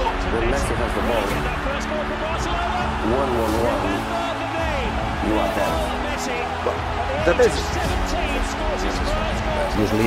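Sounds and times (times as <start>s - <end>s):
background music with pulsing beat: 0.0s - 10.0s.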